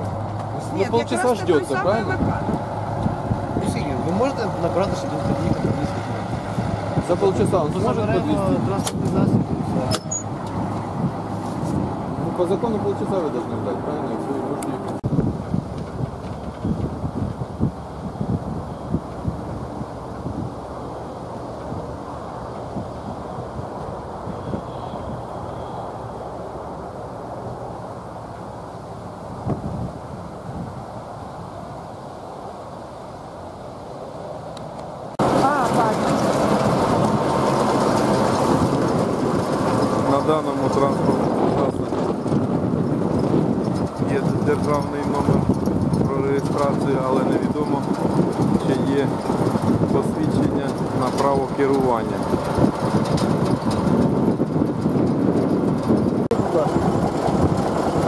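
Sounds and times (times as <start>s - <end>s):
construction machinery: 0.0s - 18.0s, 35.1s - 58.0s
machine engine running close by: 0.0s - 28.8s, 35.2s - 58.0s
indistinct voices: 35.2s - 38.8s.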